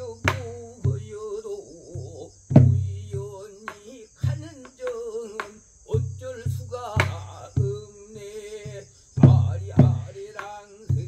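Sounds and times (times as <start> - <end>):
high insect drone: 0.0 - 11.0
man singing with wavering vibrato: 0.0 - 11.0
barrel drum strokes: 2.5 - 8.3, 9.2 - 11.0.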